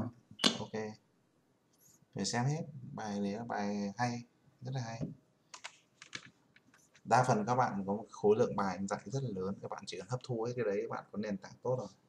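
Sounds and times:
computer keyboard keystrokes: 0:05.5 - 0:06.7.

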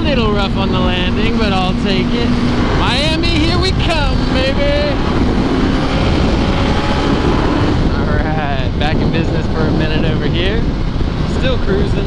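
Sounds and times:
motorcycle engine cruising: 0:00.0 - 0:12.0
wind rush on microphone: 0:00.0 - 0:12.0.

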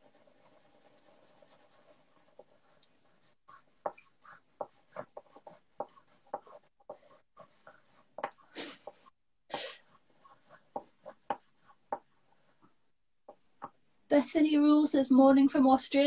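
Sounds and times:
pencils scratching on paper: 0:00.0 - 0:13.4.

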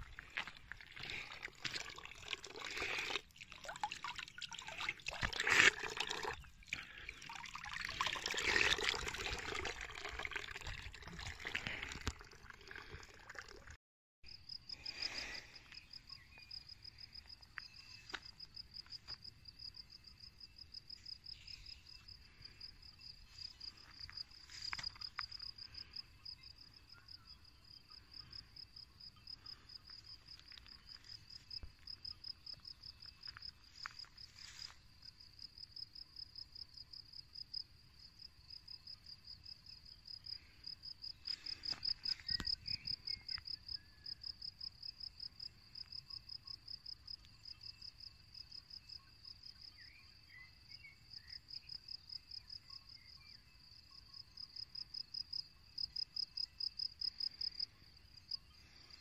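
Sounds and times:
crickets chirping: 0:14.3 - 0:59.0.

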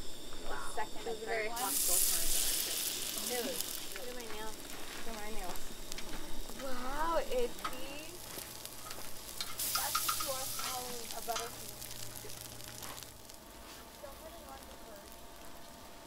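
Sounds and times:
french toast sizzling on griddle: 0:00.0 - 0:16.0.

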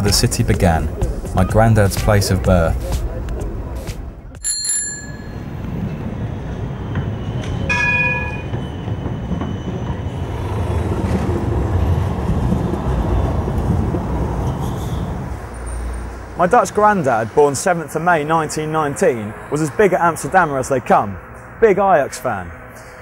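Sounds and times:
city street traffic rumble: 0:00.0 - 0:23.0
bicycle bell ringing: 0:04.4 - 0:05.6, 0:07.7 - 0:08.5.

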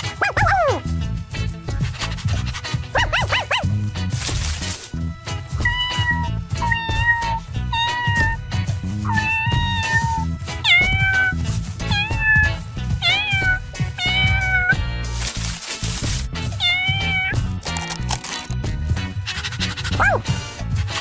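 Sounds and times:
background music: 0:00.0 - 0:21.0
kitten meowing: 0:05.6 - 0:08.4, 0:09.1 - 0:14.8, 0:16.6 - 0:17.4.

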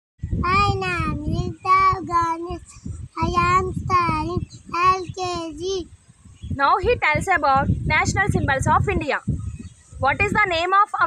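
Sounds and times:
young boy singing: 0:00.4 - 0:05.9.

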